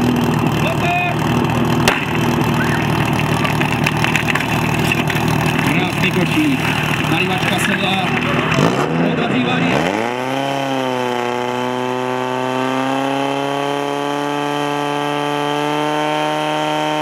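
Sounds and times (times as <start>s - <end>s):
motor pump engine revving: 0.0s - 17.0s.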